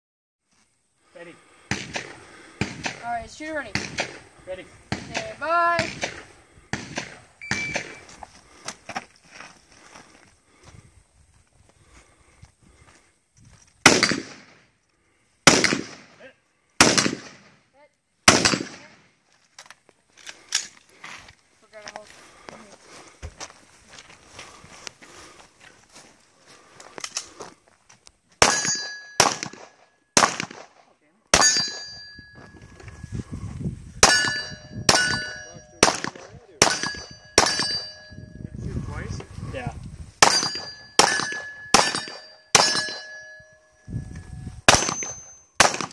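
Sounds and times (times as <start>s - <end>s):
ring of struck steel targets: 7.4s - 8.0s, 28.4s - 29.8s, 31.4s - 32.4s, 34.0s - 38.4s, 40.2s - 43.8s, 44.7s - 45.9s
handgun shots: 28.4s - 30.7s, 34.0s - 37.8s, 40.2s - 43.2s, 44.7s - 45.9s.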